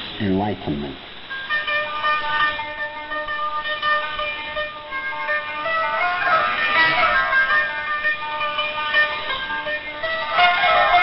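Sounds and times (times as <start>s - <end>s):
music over shortwave radio: 1.2s - 11.0s.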